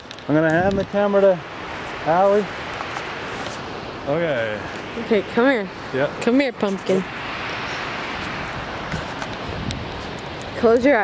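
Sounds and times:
waterfall roaring: 0:00.0 - 0:11.0.

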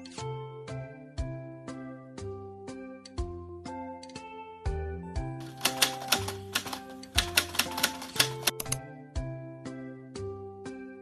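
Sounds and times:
light background music: 0:00.0 - 0:11.0
typing clicks: 0:05.4 - 0:08.8.

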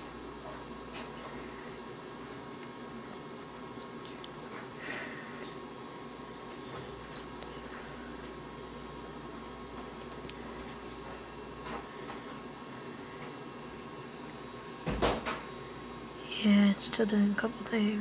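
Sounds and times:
room hum and hiss: 0:00.0 - 0:18.0.

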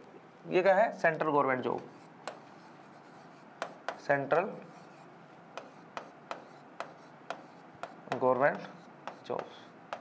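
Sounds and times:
faint pen scratching: 0:01.7 - 0:09.8
pen tip tapping a board: 0:03.6 - 0:04.1, 0:05.6 - 0:10.0.

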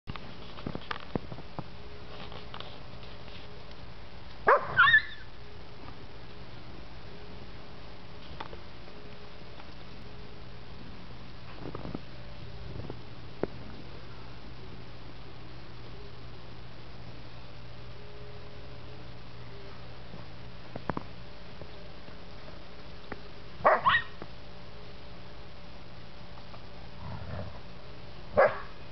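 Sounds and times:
dog barking: 0:04.5 - 0:05.2, 0:23.6 - 0:24.2, 0:28.4 - 0:28.8
puppy yelping: 0:04.5 - 0:05.3, 0:23.7 - 0:24.2.

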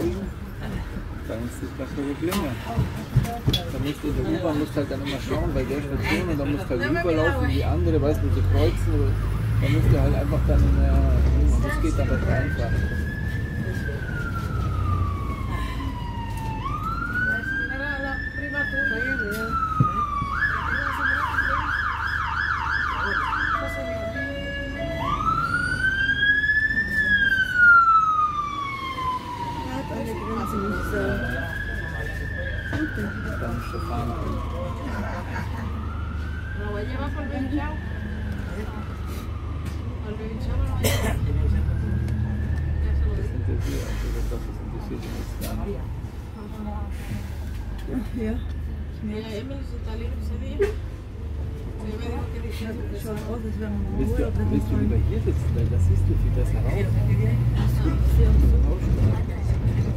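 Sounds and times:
bus engine rumble: 0:00.0 - 0:59.9
siren wailing and yelping: 0:11.6 - 0:40.3.

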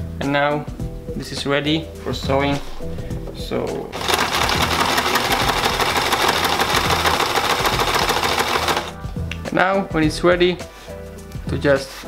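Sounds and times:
sewing machine rattling: 0:04.0 - 0:08.9
sewing machine motor hum: 0:04.0 - 0:09.0.

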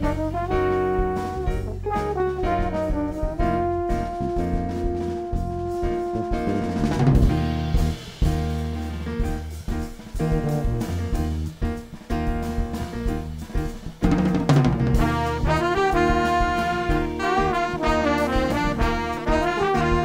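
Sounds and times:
held horn notes: 0:00.0 - 0:07.8, 0:15.0 - 0:20.0
drum crash: 0:00.0 - 0:20.0
jazz groove of drums and bass: 0:00.0 - 0:20.0.

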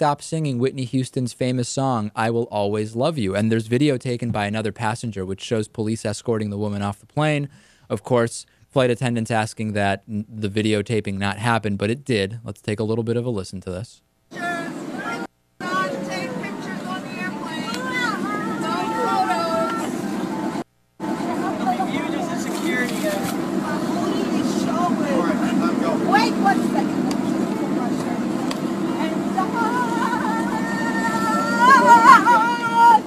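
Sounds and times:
people talking: 0:00.0 - 0:33.0
airliner cabin hum: 0:14.3 - 0:33.0
voice holding wavering notes: 0:28.9 - 0:33.0.

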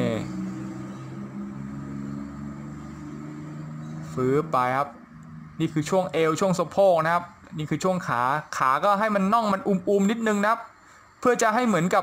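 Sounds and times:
low engine hum: 0:00.0 - 0:06.8.

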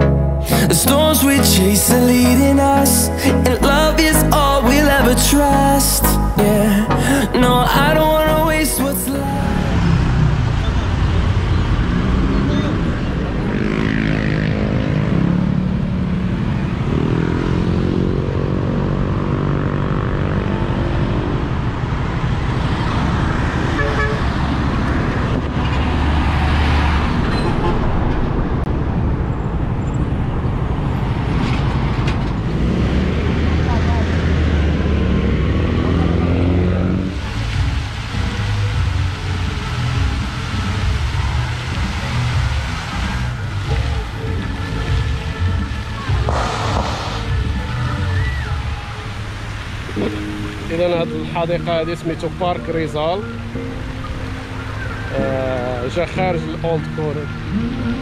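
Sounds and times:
cars passing: 0:00.0 - 0:58.0
heavy truck passing: 0:00.0 - 0:58.0
car horns tooting: 0:23.7 - 0:24.5.

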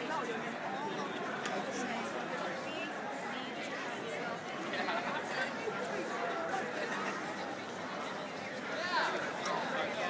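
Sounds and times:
crowd chattering: 0:00.0 - 0:10.0.

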